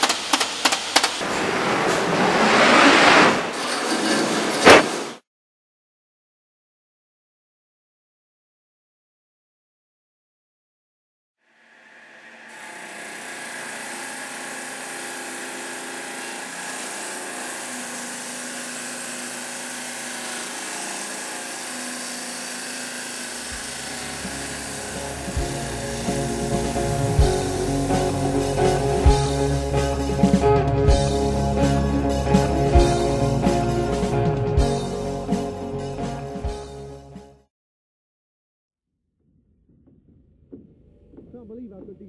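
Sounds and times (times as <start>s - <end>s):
saw blade cutting stone: 11.5s - 28.8s
rock music: 23.6s - 37.4s.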